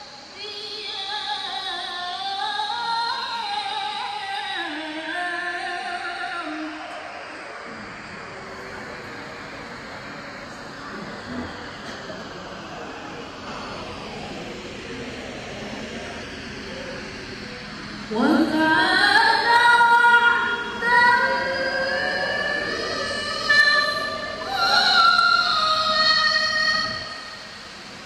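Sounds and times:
steady background noise: 0:00.0 - 0:28.0
woman reciting melodically: 0:00.4 - 0:06.9, 0:18.1 - 0:27.3.

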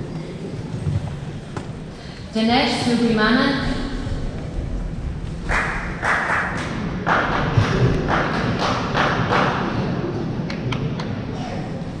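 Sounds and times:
low rumble of large hall: 0:00.0 - 0:12.0
hand clapping: 0:05.4 - 0:09.7.

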